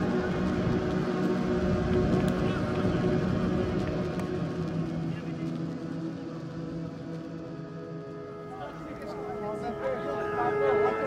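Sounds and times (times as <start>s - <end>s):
indistinct voices outdoors: 0.0s - 11.0s.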